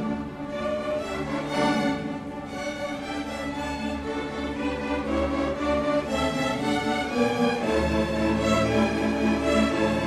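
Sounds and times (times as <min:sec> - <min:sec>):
string orchestra playing: 0:00.0 - 0:10.0.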